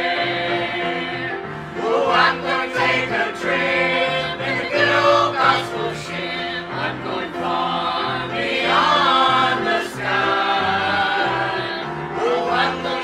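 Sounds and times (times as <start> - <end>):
choir singing a hymn: 0.0 - 13.0.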